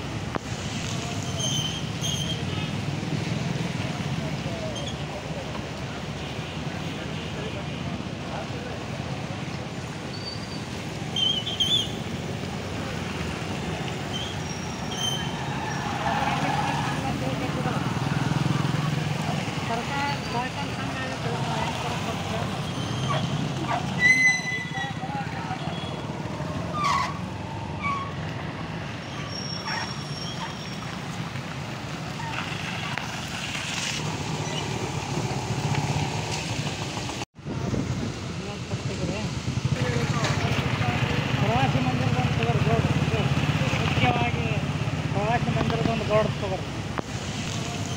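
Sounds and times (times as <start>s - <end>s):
motorcycles and cars passing: 0.0s - 47.9s
people's voices: 12.0s - 28.4s, 38.3s - 47.9s.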